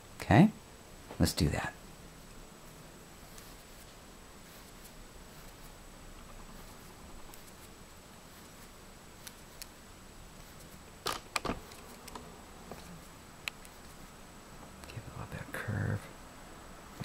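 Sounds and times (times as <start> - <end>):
low background hiss: 0.0 - 17.0.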